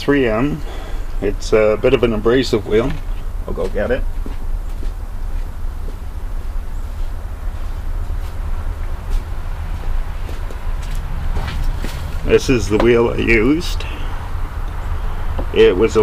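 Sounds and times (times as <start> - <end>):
low rumble: 0.0 - 16.0
footsteps: 2.8 - 13.1.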